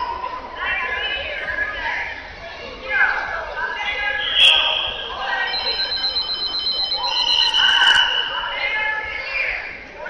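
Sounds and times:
crowd chatter in a hall: 0:00.0 - 0:10.0
shrill referee whistles: 0:04.1 - 0:08.5.

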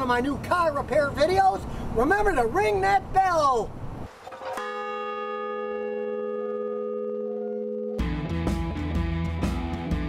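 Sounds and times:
large bronze bell ringing: 0:04.6 - 0:08.1.

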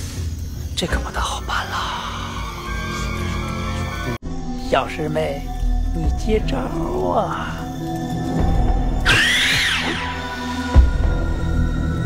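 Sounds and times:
dramatic film music: 0:00.0 - 0:12.0.

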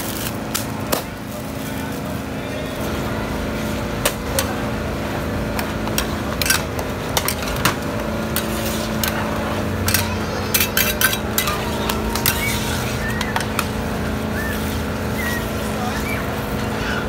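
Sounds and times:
metal utensils clanking on wok: 0:05.5 - 0:13.8.

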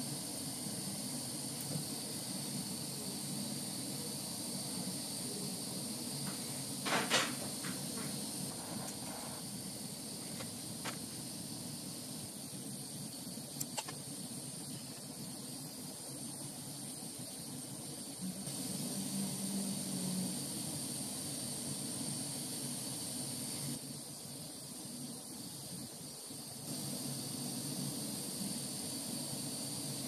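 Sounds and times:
gas torch flame hissing: 0:00.0 - 0:30.0
small clicks: 0:13.6 - 0:14.0.

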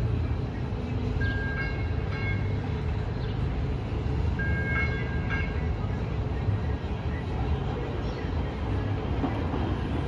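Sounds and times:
light rail train rumbling: 0:00.0 - 0:10.0.

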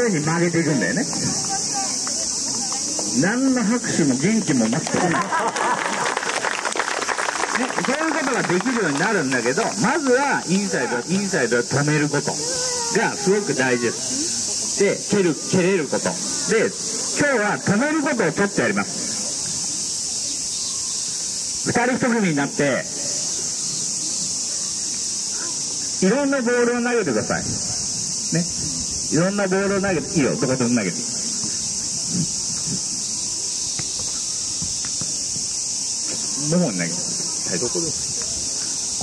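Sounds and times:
cicadas droning: 0:00.0 - 0:39.0
voices: 0:00.0 - 0:39.0
overlapping voices: 0:04.2 - 0:14.9.

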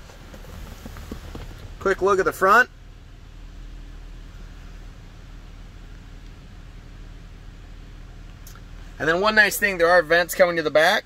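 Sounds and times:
air hissing from vents: 0:00.0 - 0:10.0
car engine idling: 0:00.0 - 0:11.0.

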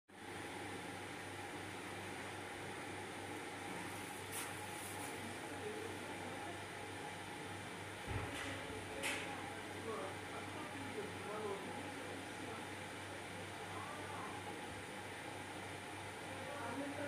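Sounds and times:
equipment hum and hiss: 0:00.2 - 0:17.0.

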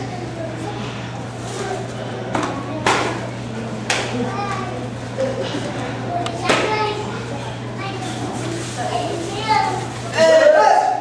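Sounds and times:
children chattering and calling out: 0:00.0 - 0:11.0
steady low hum: 0:00.0 - 0:11.0.

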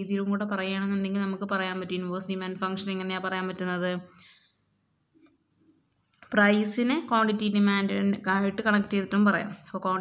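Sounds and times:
person talking: 0:00.0 - 0:04.1, 0:06.2 - 0:10.0.

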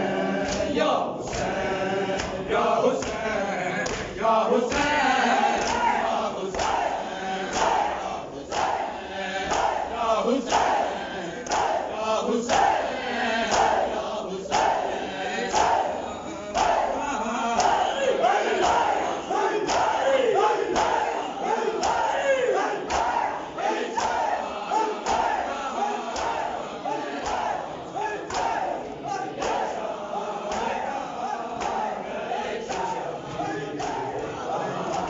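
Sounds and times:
men chanting in unison: 0:00.0 - 0:35.0.

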